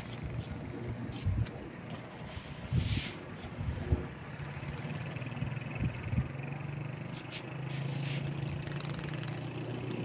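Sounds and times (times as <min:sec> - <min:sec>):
engine humming steadily: 0:00.0 - 0:10.0.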